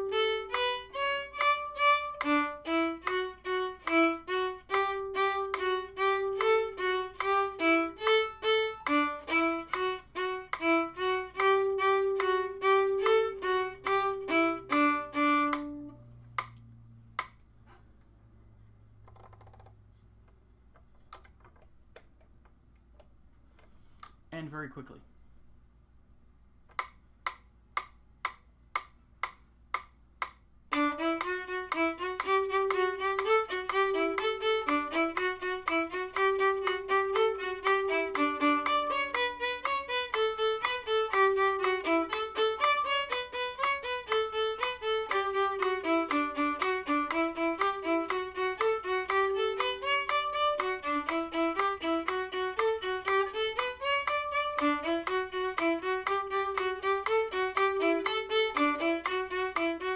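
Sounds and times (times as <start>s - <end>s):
solo violin fast notes: 0.0s - 16.6s, 30.7s - 59.9s
even clicks: 19.0s - 24.2s, 26.6s - 59.9s.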